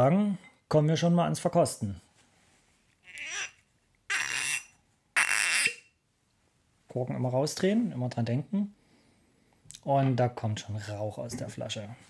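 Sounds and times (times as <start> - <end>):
cork squeaking in bottle neck: 3.1 - 6.0.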